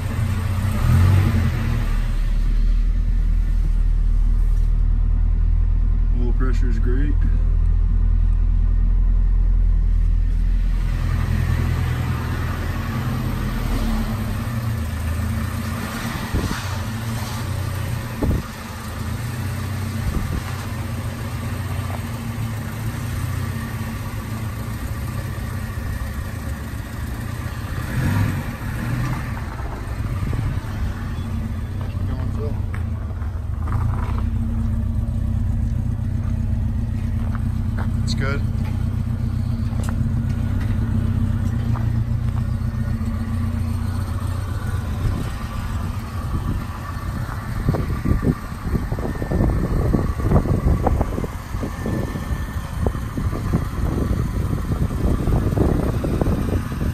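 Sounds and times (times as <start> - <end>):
car engine idling: 0.0 - 56.9.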